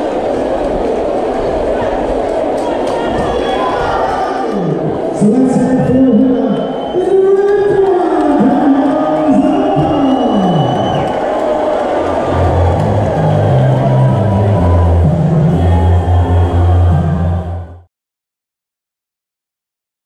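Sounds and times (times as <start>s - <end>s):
crowd cheering: 0.0s - 17.9s
loud music: 11.9s - 17.9s
deep bass: 12.2s - 17.9s.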